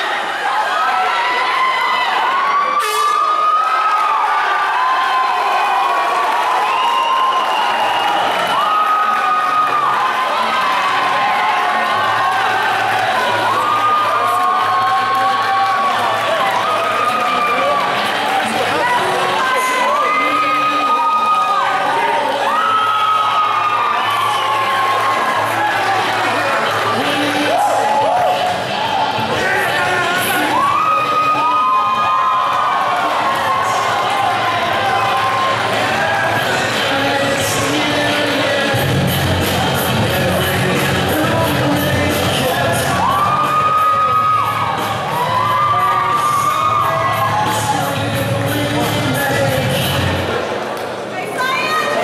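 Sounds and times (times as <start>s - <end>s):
crowd cheering and shouting: 0.0s - 52.0s.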